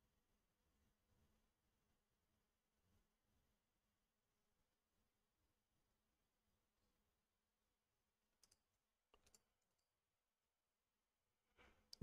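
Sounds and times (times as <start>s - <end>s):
faint clicks: 8.4s - 9.8s.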